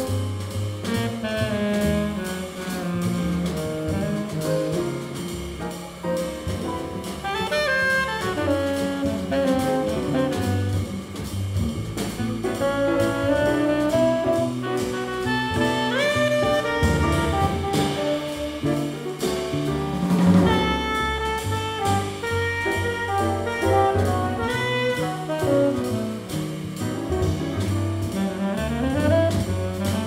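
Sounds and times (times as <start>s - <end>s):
jazz group playing: 0.0s - 30.0s
tenor saxophone melody: 7.2s - 10.9s, 12.5s - 19.2s, 20.4s - 26.3s, 28.2s - 30.0s.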